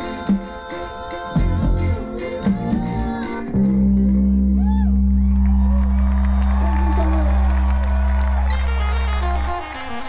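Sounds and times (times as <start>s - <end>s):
crowd whooping and cheering: 4.2s - 10.0s
live band music: 6.6s - 10.0s.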